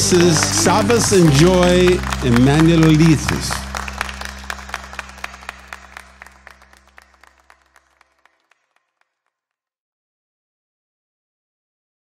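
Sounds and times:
held low music chord: 0.0s - 8.0s
guests applauding: 0.0s - 9.3s.

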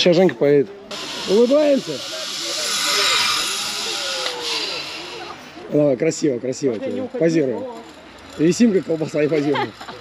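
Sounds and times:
zipline trolley whirring on cable: 0.9s - 10.0s.

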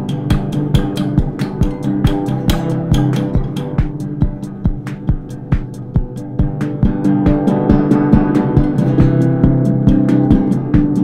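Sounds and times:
classical guitar with spring reverb: 0.0s - 11.0s
low thumps and clicks beat: 0.0s - 11.0s.

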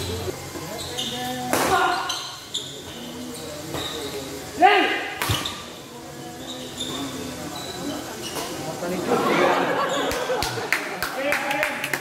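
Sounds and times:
shoes squeaking on court floor: 0.0s - 4.4s, 5.2s - 8.8s.

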